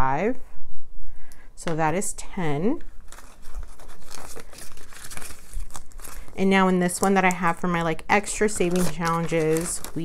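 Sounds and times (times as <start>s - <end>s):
banknotes and plastic rustling: 2.6s - 10.0s.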